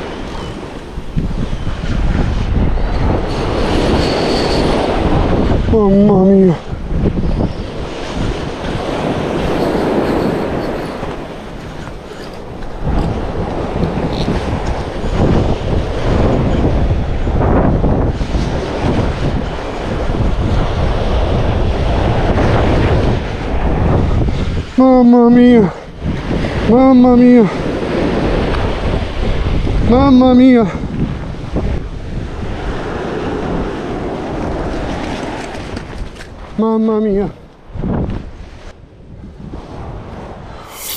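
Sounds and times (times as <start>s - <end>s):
wind buffeting microphone: 0.0s - 40.9s
steady rushing noise: 40.4s - 40.9s.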